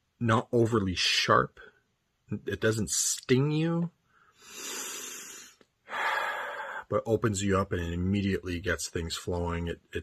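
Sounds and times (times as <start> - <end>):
man speaking word: 0.2 - 1.7, 2.3 - 4.0, 6.8 - 10.0
man breathing: 4.0 - 6.9.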